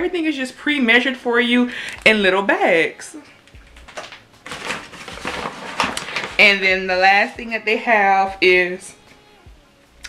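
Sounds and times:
paper bag rustling and crinkling: 3.8 - 6.8.

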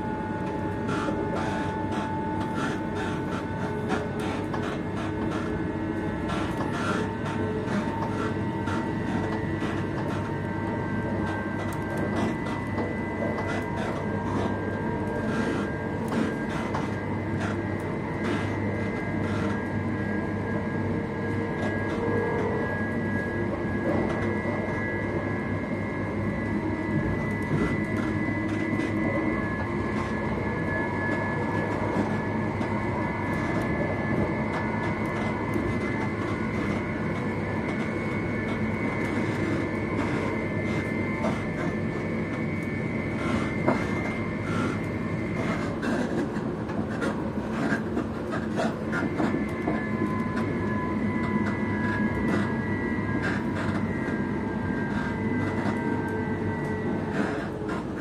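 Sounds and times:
high whine: 0.0 - 58.0
train running rumble: 0.0 - 58.0.

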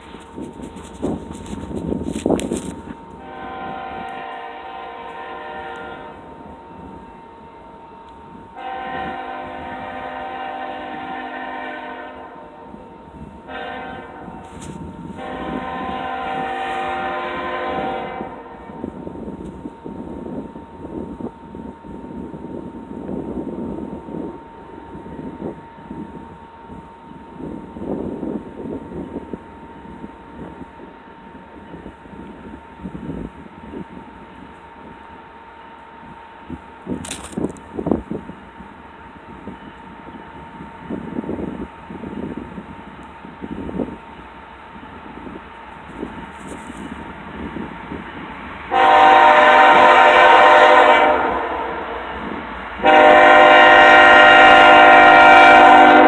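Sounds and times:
distant locomotive air horn: 3.2 - 6.3, 8.6 - 12.8, 13.4 - 18.8, 48.7 - 52.0, 52.8 - 56.0.

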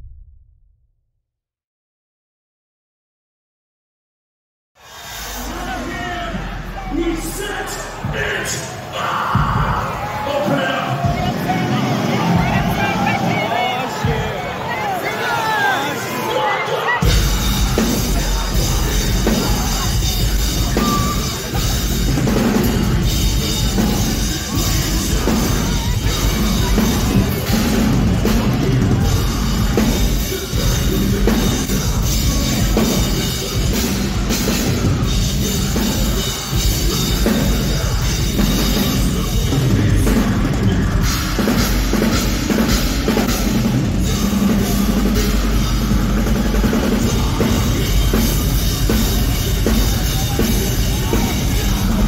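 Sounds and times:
pounding drum kit: 4.8 - 15.8, 17.0 - 52.0
bass guitar: 17.0 - 52.0
distorted electric guitars: 17.0 - 52.0.

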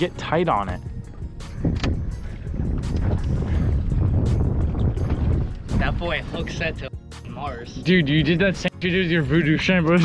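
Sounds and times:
wind buffeting microphone: 0.0 - 6.9.

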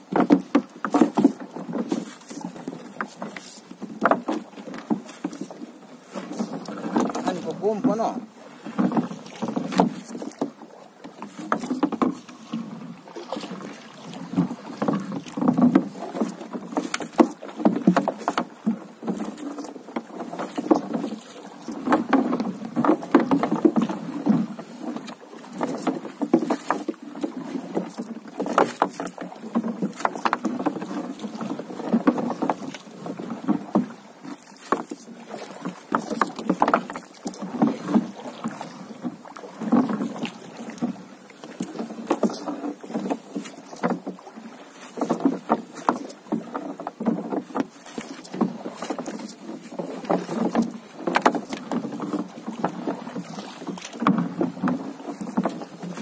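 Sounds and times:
water slapping boat hull: 0.0 - 56.0.

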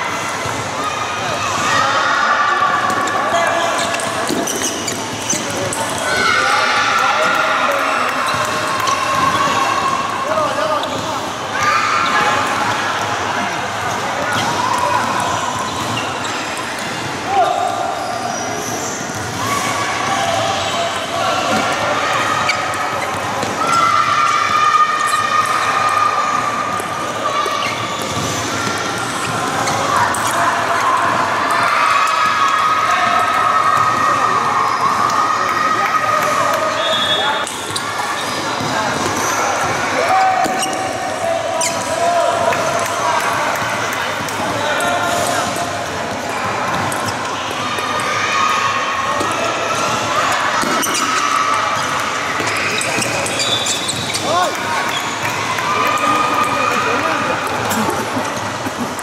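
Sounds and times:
continuous voices in a hall: 0.0 - 59.0.

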